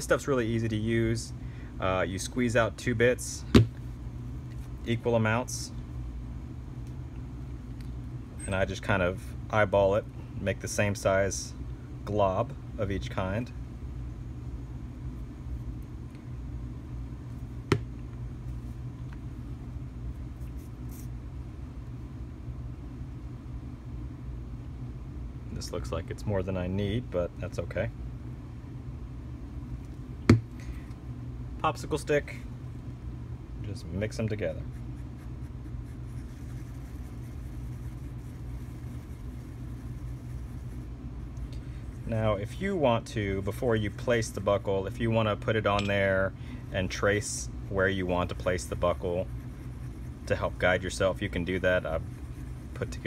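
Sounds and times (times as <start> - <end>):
low room hum: 0.0 - 53.0.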